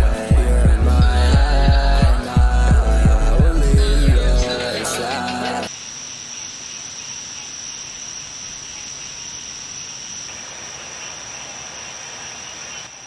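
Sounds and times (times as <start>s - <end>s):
crickets chirping: 4.4s - 13.0s.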